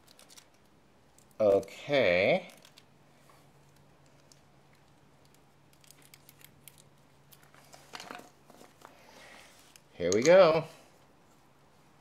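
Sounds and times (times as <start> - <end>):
tape crinkling and clicking: 0.0 - 9.0.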